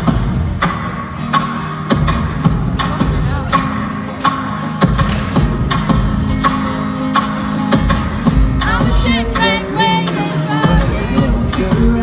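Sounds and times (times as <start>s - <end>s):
bass guitar: 0.0s - 12.0s
drums keeping a steady beat: 0.0s - 12.0s.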